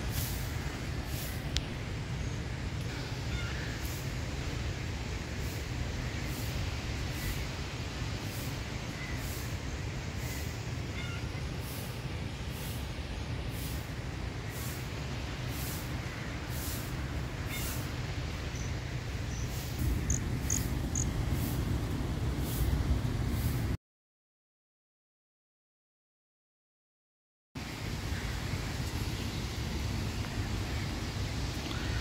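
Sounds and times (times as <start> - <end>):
wind rumbling on microphone: 0.0 - 23.8.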